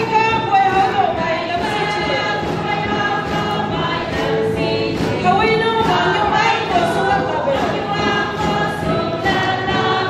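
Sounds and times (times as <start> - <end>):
congregation singing: 0.0 - 10.0.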